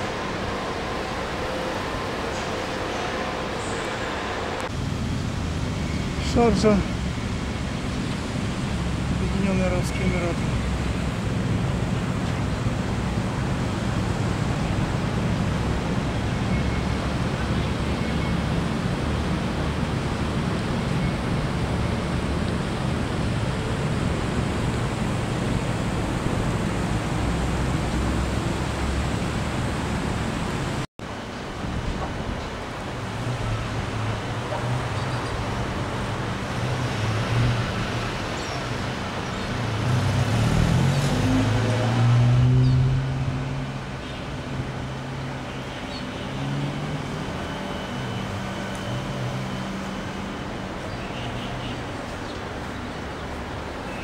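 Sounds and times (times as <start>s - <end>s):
vehicle engine: 0.0s - 31.2s, 32.1s - 53.9s
cars passing: 0.0s - 54.0s
road noise: 0.0s - 54.0s.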